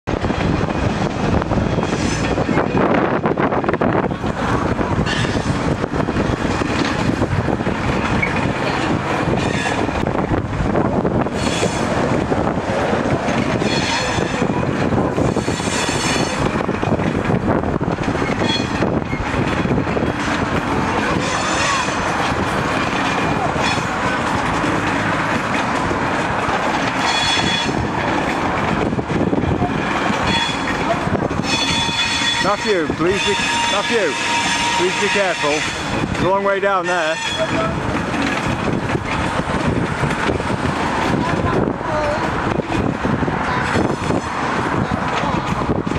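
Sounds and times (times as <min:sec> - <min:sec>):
diesel locomotives running: 0:00.0 - 0:45.9
high-pitched rail squeals: 0:01.7 - 0:02.8, 0:05.0 - 0:05.6, 0:09.3 - 0:10.4, 0:11.3 - 0:12.0, 0:13.5 - 0:14.5, 0:15.2 - 0:16.5, 0:18.2 - 0:19.3, 0:21.0 - 0:22.2, 0:23.0 - 0:24.2, 0:27.0 - 0:27.9, 0:30.2 - 0:36.0, 0:36.7 - 0:37.8.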